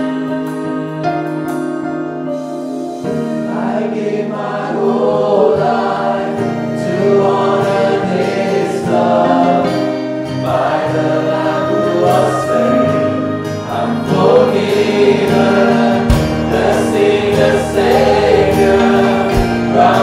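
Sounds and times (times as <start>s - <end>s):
congregation singing: 0.0s - 20.0s
accompaniment chords: 6.5s - 20.0s.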